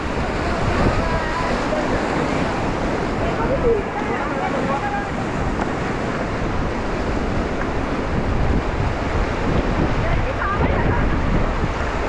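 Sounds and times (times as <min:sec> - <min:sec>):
river water rushing and splashing: 0:00.0 - 0:12.0
wind buffeting microphone: 0:00.0 - 0:12.0.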